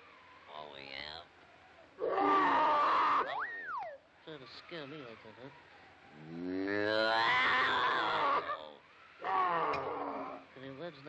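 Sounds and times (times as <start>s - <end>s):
cartoon lion roars: 2.0s - 3.4s, 6.2s - 10.5s.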